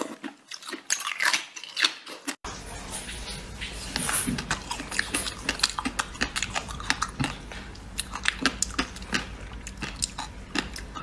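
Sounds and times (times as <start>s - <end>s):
chewing ice: 0.0s - 2.4s, 3.1s - 11.0s.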